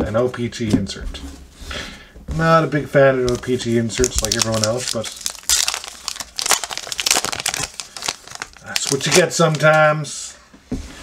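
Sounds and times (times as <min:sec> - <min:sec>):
cards drawn out: 0:03.2 - 0:09.9
foil wrapper crinkling: 0:03.3 - 0:09.9.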